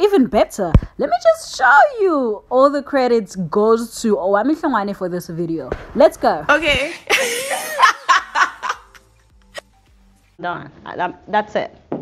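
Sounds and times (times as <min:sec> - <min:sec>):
person laughing: 0:06.9 - 0:09.6.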